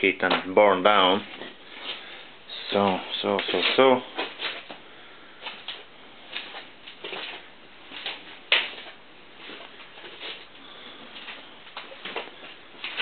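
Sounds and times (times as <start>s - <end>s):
footsteps: 0.0s - 4.8s, 5.4s - 13.0s.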